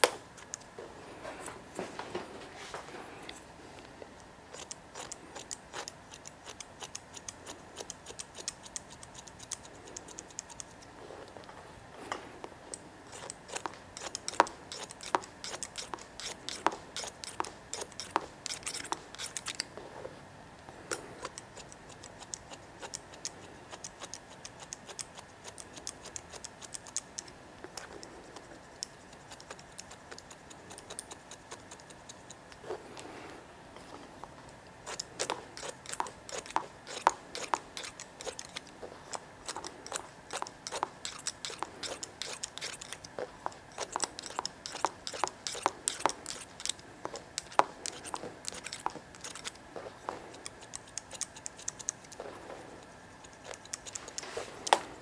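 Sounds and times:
shears snipping hair: 4.2 - 11.4, 12.2 - 19.8, 20.9 - 33.2, 34.8 - 55.0.

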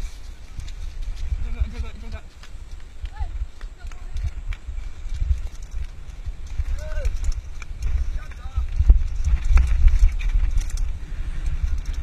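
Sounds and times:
mountain bike rattling and clattering: 0.0 - 12.0
wind buffeting microphone: 0.0 - 12.0.

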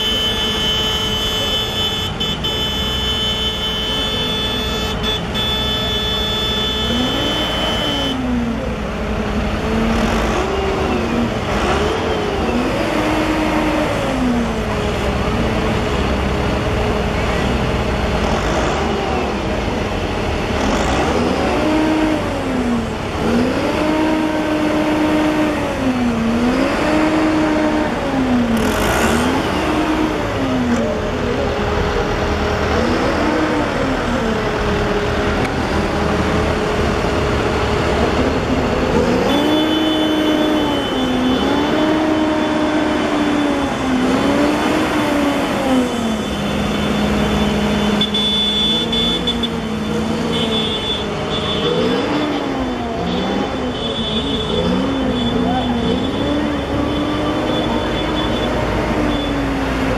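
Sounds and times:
tractor diesel engines: 0.0 - 59.9.

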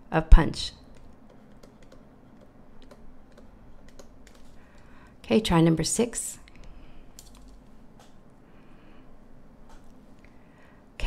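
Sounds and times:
stylus tapping on tablet screen: 0.9 - 4.8.

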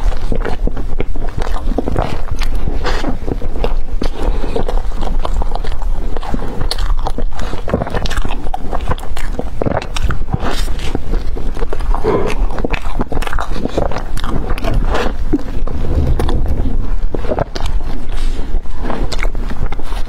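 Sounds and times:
biting and chewing bread: 0.0 - 20.0.

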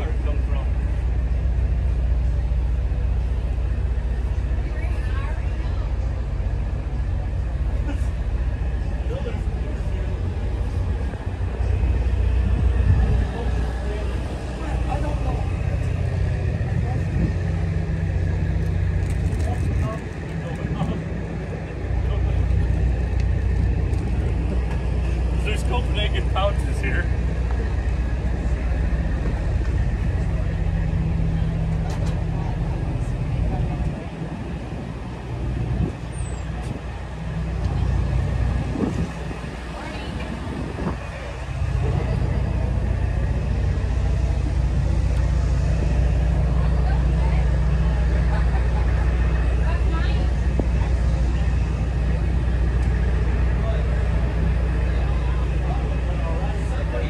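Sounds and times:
engine idling: 0.0 - 57.0.

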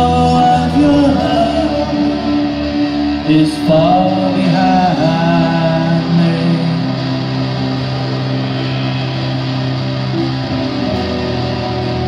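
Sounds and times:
indie rock band playing: 0.0 - 12.0.

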